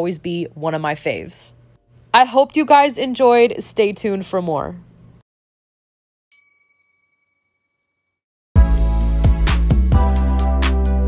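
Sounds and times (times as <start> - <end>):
bright chime: 6.3 - 8.2.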